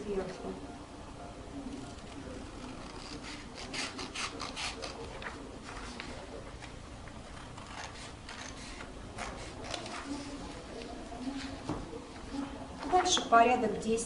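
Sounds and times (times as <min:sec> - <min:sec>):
paper rustling: 0:01.9 - 0:13.3
scissors snipping paper: 0:02.6 - 0:06.7, 0:07.3 - 0:10.2.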